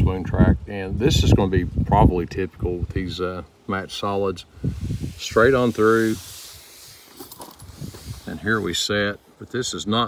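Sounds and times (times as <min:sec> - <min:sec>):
soft hiss: 0:00.7 - 0:10.0.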